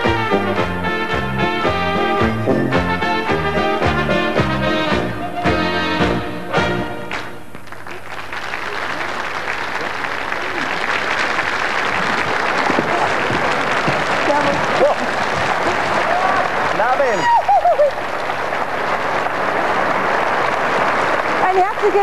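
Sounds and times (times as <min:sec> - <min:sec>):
audience applauding: 0:07.1 - 0:22.0.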